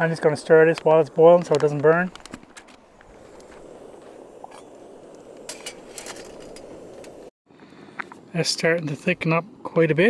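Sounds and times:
water boiling and bubbling: 2.1s - 7.3s.

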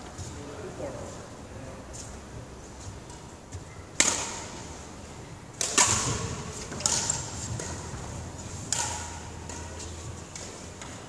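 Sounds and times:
racket hitting shuttlecock: 4.0s - 4.8s, 5.6s - 11.0s.

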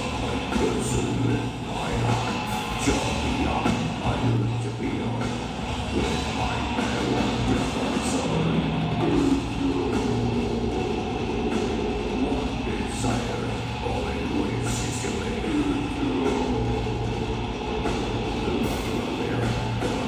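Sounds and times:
death metal band playing live: 0.0s - 20.0s
distorted electric guitars: 0.0s - 20.0s
drum kit: 0.0s - 20.0s.

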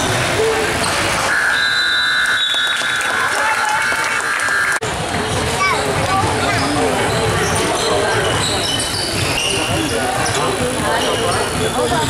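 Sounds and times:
crowd voices: 0.0s - 12.0s
scoreboard buzzer tone: 1.3s - 4.8s.

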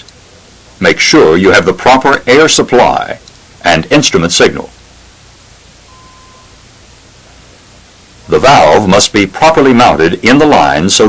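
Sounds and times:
recording hiss: 0.0s - 11.0s
brief faint tone: 5.9s - 6.6s.

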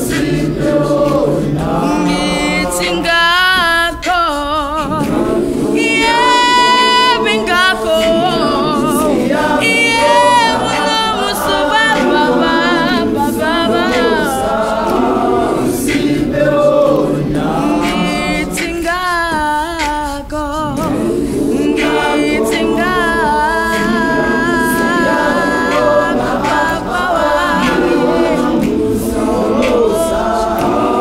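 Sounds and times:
gospel choir singing unaccompanied: 0.0s - 31.0s
solo voices singing with vibrato: 0.0s - 31.0s.

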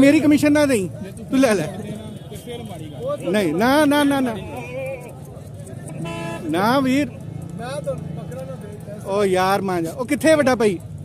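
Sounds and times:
voices calling out: 0.0s - 10.8s
crowd hubbub: 0.0s - 11.0s
vehicle horn: 5.9s - 6.6s.

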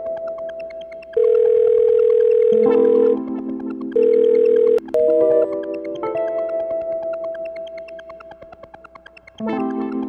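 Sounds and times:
soft synth music with ticking beat: 0.0s - 10.0s
telephone ringback tone: 1.2s - 3.3s, 3.9s - 5.6s.

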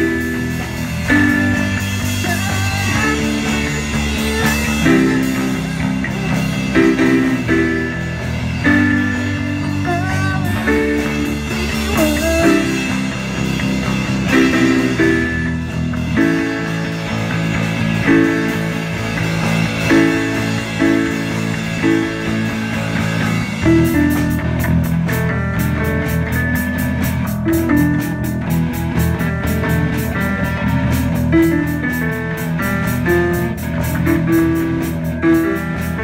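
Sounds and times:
guitar line bending pitch: 0.0s - 36.0s
rock band playing live: 0.0s - 36.0s.

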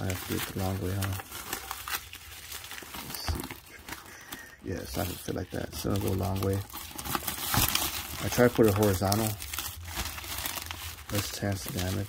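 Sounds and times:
cardboard and mailer rustling: 0.0s - 12.0s.

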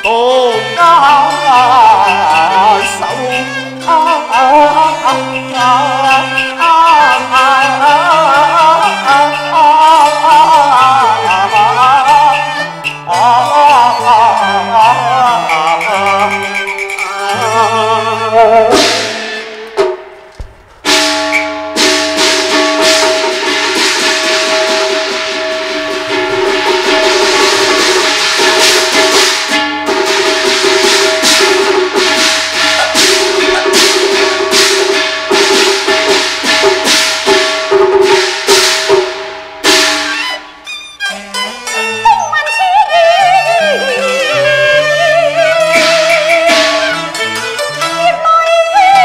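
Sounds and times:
percussion ensemble fast strikes: 0.0s - 48.2s
bowed-string melody: 0.0s - 49.0s
sustained instrumental tones: 0.0s - 49.0s.

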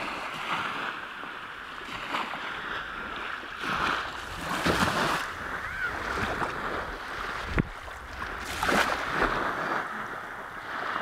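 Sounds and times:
small waves washing on shore: 0.0s - 11.0s
wind on microphone: 1.9s - 11.0s.

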